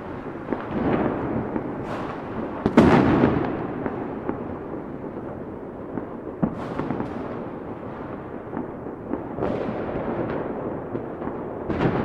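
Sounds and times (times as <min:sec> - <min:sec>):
firecrackers crackling: 0:00.0 - 0:12.0
small firework pops: 0:00.5 - 0:04.8, 0:05.9 - 0:12.0
loud firework bang: 0:00.7 - 0:04.4, 0:06.4 - 0:07.4.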